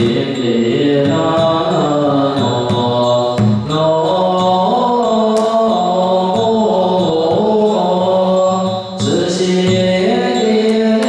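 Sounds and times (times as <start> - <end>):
group chanting in unison: 0.0 - 11.0.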